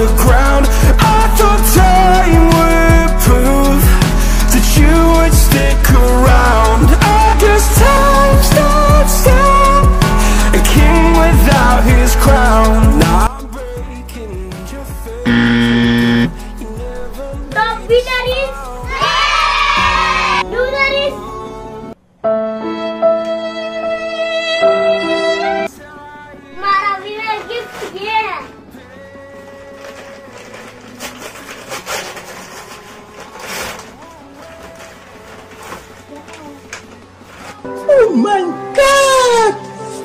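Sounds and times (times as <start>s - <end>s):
background music with steady beat: 0.0s - 40.0s
buzzer: 15.3s - 16.4s
paper envelope tearing: 29.7s - 36.5s.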